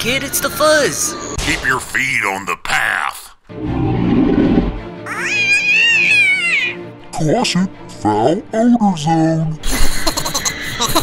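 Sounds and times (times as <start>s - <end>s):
background music: 0.0s - 11.0s
dinosaur cry: 3.8s - 6.8s.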